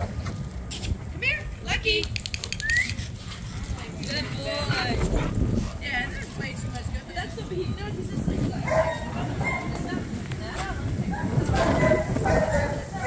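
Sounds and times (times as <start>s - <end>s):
people's voices: 0.7s - 13.0s
dogs barking and yipping: 8.5s - 10.0s, 11.0s - 13.0s.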